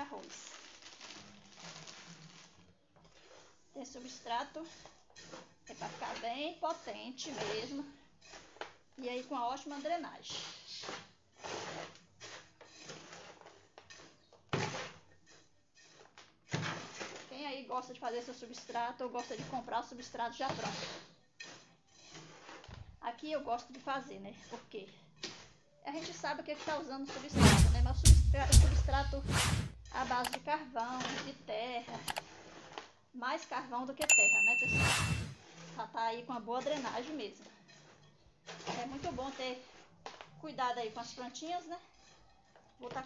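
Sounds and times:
scoop scraping dry mix: 0:00.5 - 0:03.7, 0:04.7 - 0:07.5, 0:08.2 - 0:08.8, 0:10.8 - 0:17.3, 0:20.9 - 0:22.7.

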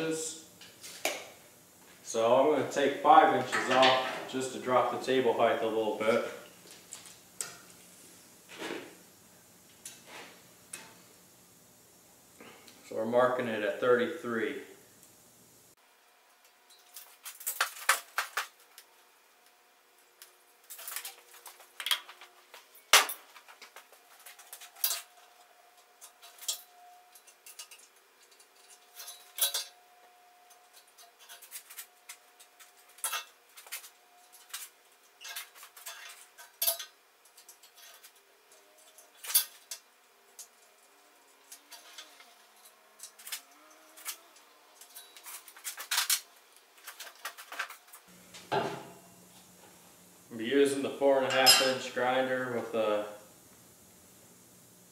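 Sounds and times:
steel tools clinking on metal: 0:26.0 - 0:29.8, 0:35.2 - 0:39.8, 0:51.2 - 0:51.9.

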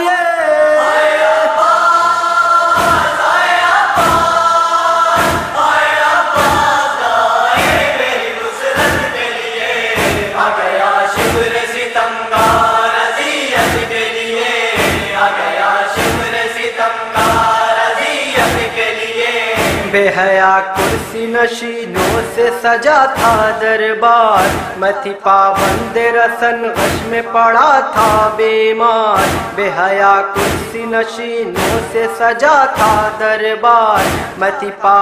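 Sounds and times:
chorus chanting a lament: 0:00.0 - 0:35.0
rhythmic chest-beating thumps: 0:01.9 - 0:25.0, 0:25.6 - 0:29.7, 0:30.3 - 0:33.4, 0:34.0 - 0:34.6.

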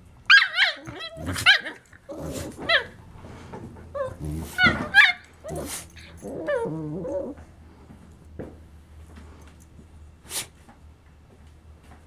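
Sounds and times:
dogs yipping and barking: 0:00.3 - 0:03.0, 0:03.9 - 0:07.4
dogs growling: 0:00.6 - 0:07.5
wavering growl-whines: 0:00.6 - 0:07.7.

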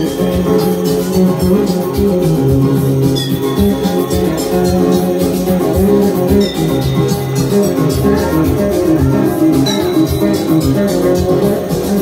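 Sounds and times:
dance music: 0:00.0 - 0:12.0.

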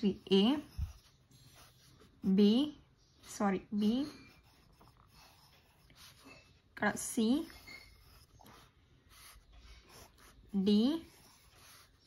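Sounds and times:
pen scratching on paper: 0:00.0 - 0:12.0.

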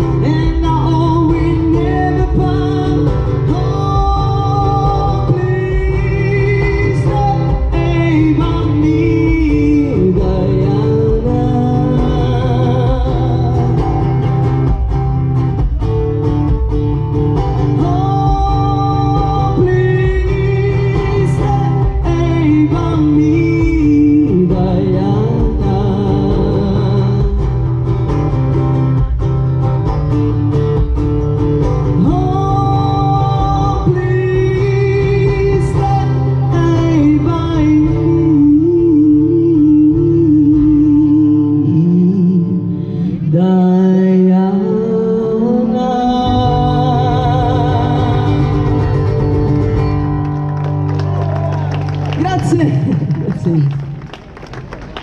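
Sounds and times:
person singing with vibrato: 0:00.0 - 0:29.4, 0:31.6 - 0:50.2
amplified acoustic guitar: 0:00.0 - 0:55.0.

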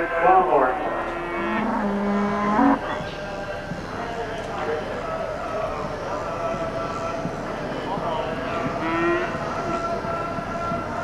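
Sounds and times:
steady hum: 0:00.0 - 0:03.6
cattle call: 0:00.8 - 0:02.8, 0:08.8 - 0:09.5.

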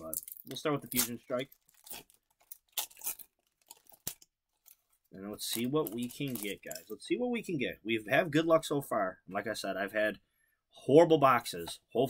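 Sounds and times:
foil wrapper tearing and crinkling: 0:00.5 - 0:04.8.

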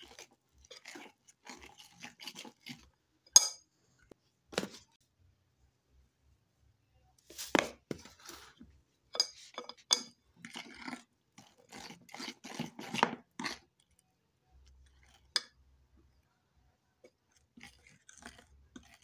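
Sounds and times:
utensil stirring batter in bowl: 0:00.0 - 0:05.0, 0:07.4 - 0:19.0.

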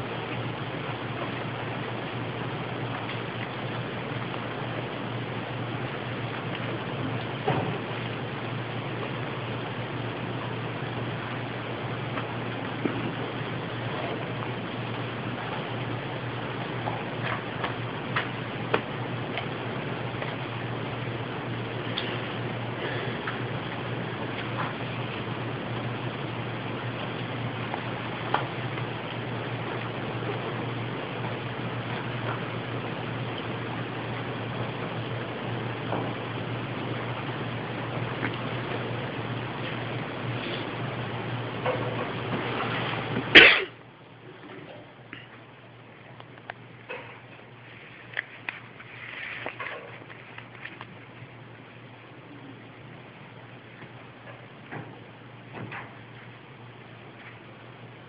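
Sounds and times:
low hum: 0:00.0 - 0:58.0
steady hiss: 0:00.0 - 0:58.0
loud cough: 0:43.3 - 0:43.8.

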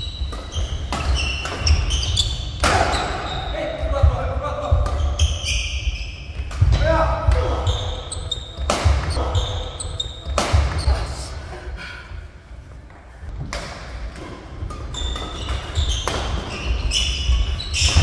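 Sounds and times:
shoes squeaking on court: 0:00.0 - 0:06.7, 0:07.3 - 0:11.0, 0:14.7 - 0:18.0
racket striking shuttlecock: 0:08.6 - 0:09.2, 0:10.2 - 0:10.8, 0:13.4 - 0:16.6.

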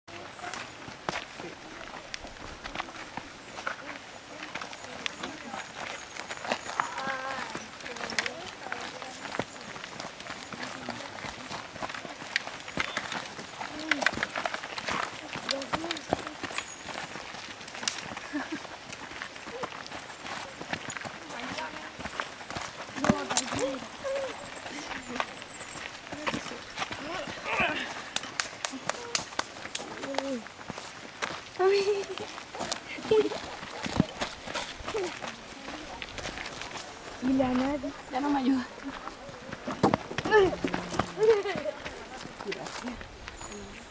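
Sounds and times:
footsteps crunching on gravel: 0:00.1 - 0:43.9
scattered voices: 0:31.6 - 0:43.8.

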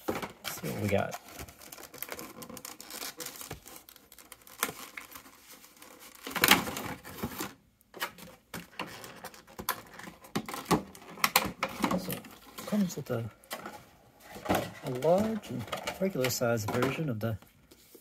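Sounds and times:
plastic packaging crackling: 0:00.2 - 0:16.9.

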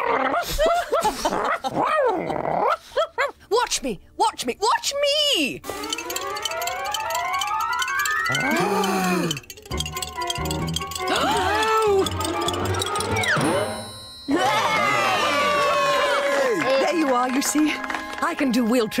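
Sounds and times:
bouncy cartoon music: 0:05.6 - 0:19.0.

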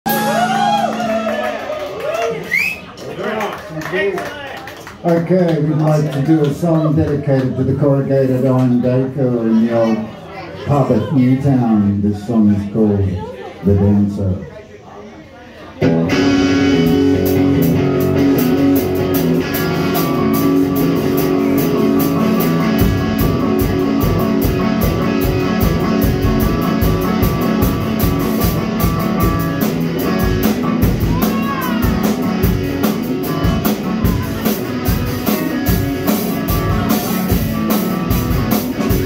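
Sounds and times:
drum kit: 0:00.0 - 0:01.5, 0:15.8 - 0:39.0
electric guitar: 0:00.1 - 0:02.6, 0:15.8 - 0:39.0
bass drum beat: 0:16.1 - 0:39.0.

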